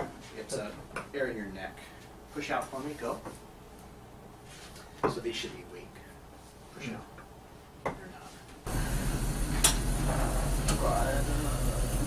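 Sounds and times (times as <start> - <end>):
man speaking quietly: 10.7 - 11.9.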